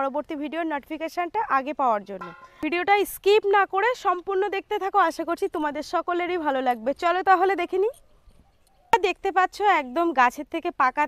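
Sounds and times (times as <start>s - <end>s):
woman speaking: 0.0s - 7.9s, 9.0s - 11.0s.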